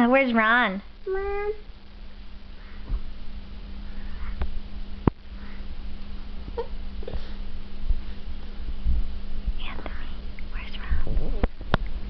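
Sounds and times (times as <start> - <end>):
low hum and rumble: 0.0 - 12.0
person whispering: 9.6 - 11.5.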